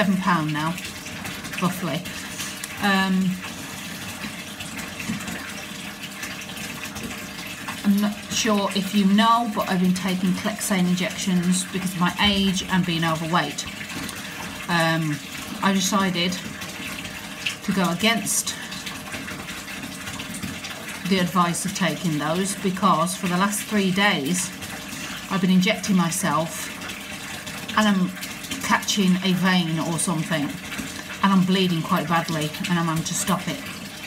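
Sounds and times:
running water rushing: 0.0s - 34.0s.

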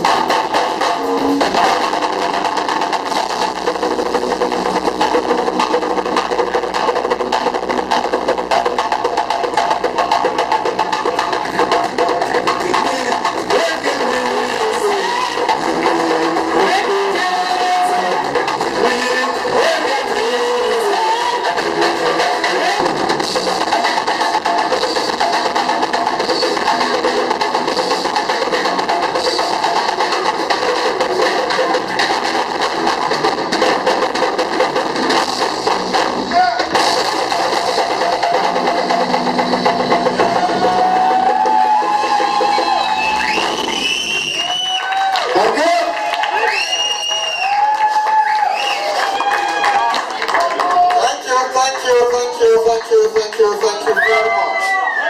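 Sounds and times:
hand drums playing rhythm: 0.0s - 43.8s
drum kit: 0.0s - 55.0s
guitar: 0.0s - 55.0s.

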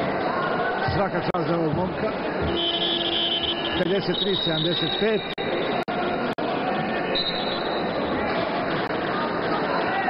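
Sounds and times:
basketball hall ambience: 0.0s - 10.0s.

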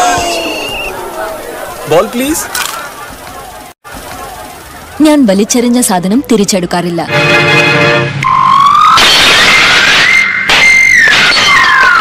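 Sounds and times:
rising whistling tone: 0.2s - 1.0s, 8.2s - 12.0s
horn-like chord: 7.1s - 8.2s.

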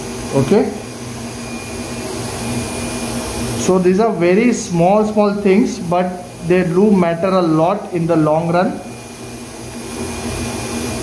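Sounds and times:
machine suction rushing air: 0.0s - 11.0s.

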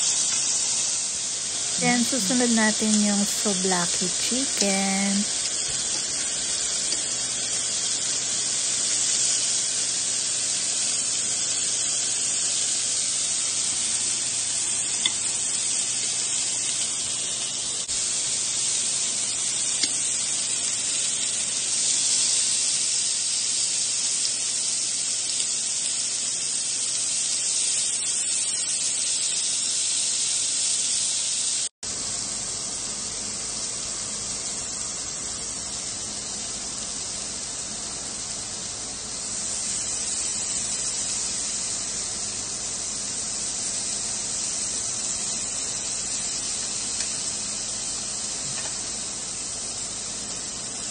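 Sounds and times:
meat sizzling on a grill: 0.0s - 50.9s.

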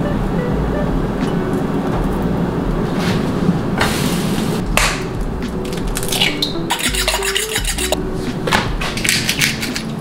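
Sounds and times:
metal utensils scraping a pan: 6.1s - 8.0s.

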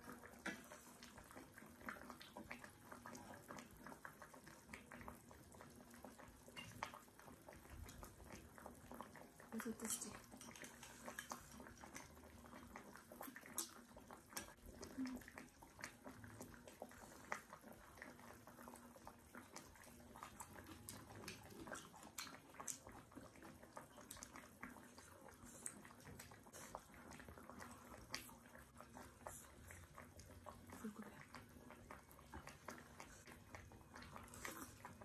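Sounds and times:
chewing with wet mouth clicks: 9.0s - 35.0s.

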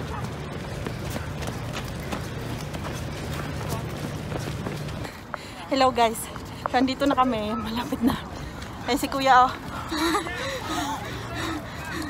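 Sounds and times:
running footsteps on paving: 0.0s - 12.0s.

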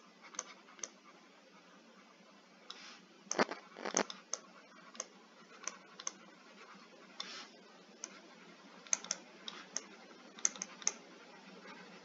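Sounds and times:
stylus scratch: 3.3s - 4.1s.

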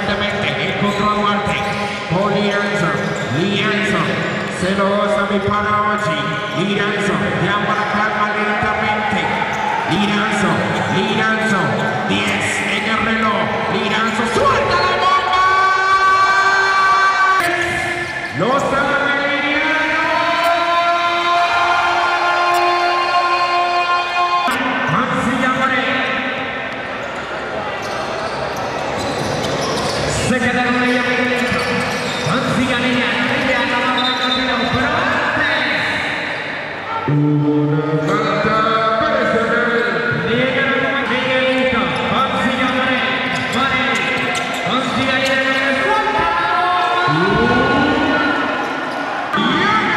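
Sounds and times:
crowd noise: 0.0s - 49.9s.

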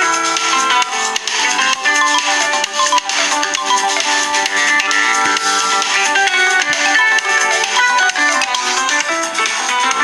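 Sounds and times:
phone ringtone: 0.0s - 10.0s
phone alarm melody: 0.3s - 9.0s.

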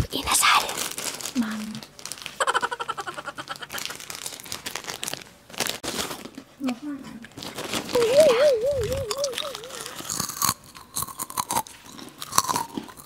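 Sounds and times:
plastic wrappers crinkling: 0.5s - 10.7s
brief vocal sounds: 8.0s - 10.1s.

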